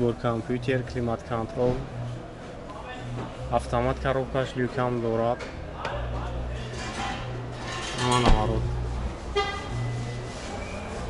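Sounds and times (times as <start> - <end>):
car horn toot: 9.3 - 10.0.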